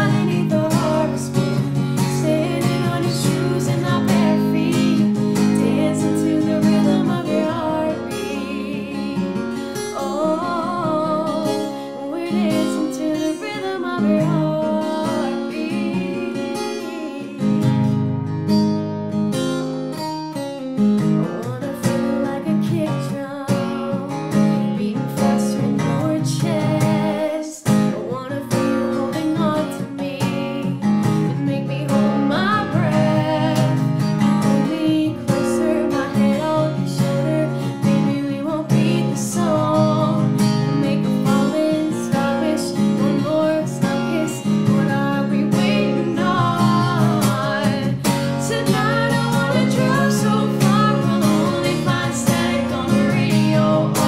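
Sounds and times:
acoustic guitar strummed and picked: 0.0 - 54.0.

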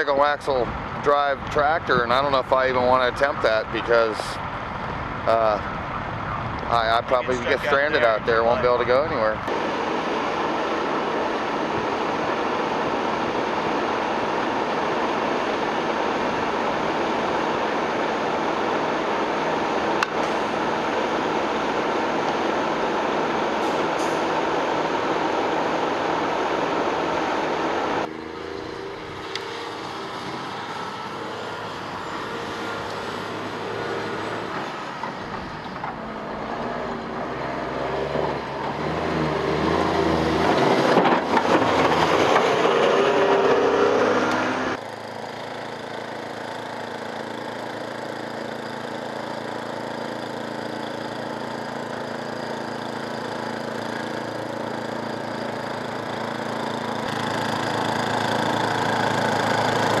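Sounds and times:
truck diesel engine: 0.0 - 60.0
snowblower engine running: 7.0 - 60.0.

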